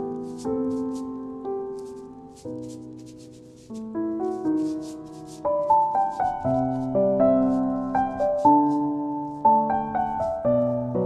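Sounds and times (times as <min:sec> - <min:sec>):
soft piano music: 0:00.0 - 0:11.0
soft rubbing strokes: 0:04.5 - 0:05.4.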